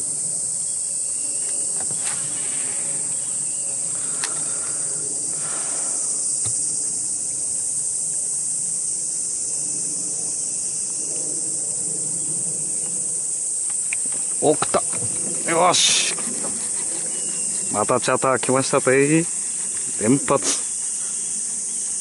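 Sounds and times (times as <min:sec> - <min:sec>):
insects droning: 0:00.0 - 0:22.0.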